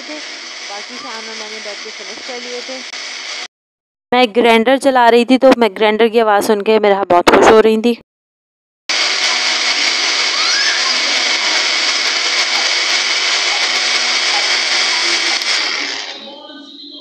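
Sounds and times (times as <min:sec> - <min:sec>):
electric mixer grinder running: 0:00.0 - 0:03.5, 0:08.9 - 0:16.3.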